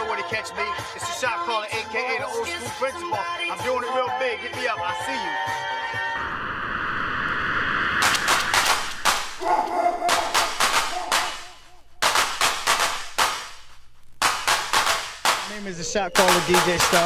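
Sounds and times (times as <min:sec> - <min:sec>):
dj scratching: 0:08.0 - 0:09.4, 0:10.0 - 0:17.0.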